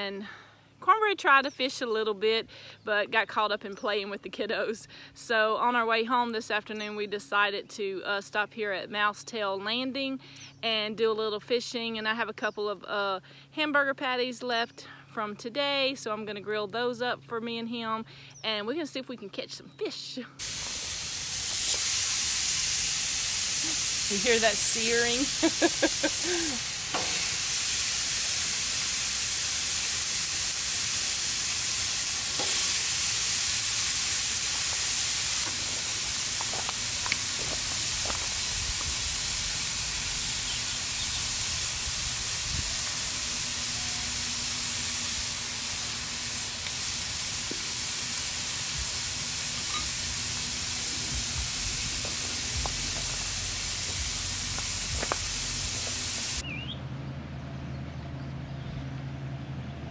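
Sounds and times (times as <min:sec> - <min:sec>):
patties sizzling on griddle: 0:20.4 - 0:56.4.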